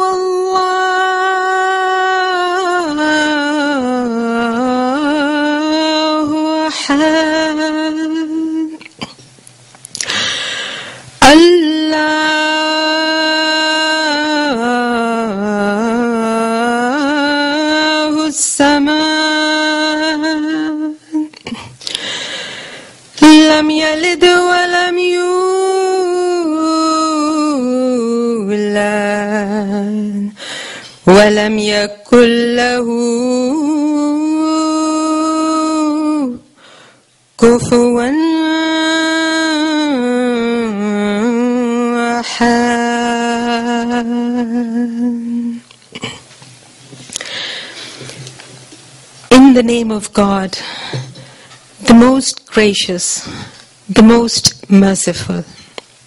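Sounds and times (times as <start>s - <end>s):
woman chanting recitation: 0.0s - 9.1s, 11.2s - 21.7s, 23.2s - 30.4s, 31.0s - 36.6s, 37.4s - 45.6s, 49.3s - 50.7s, 51.8s - 55.7s.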